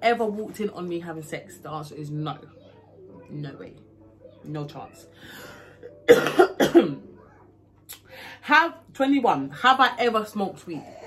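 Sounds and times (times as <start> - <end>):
woman coughing: 6.0 - 7.1.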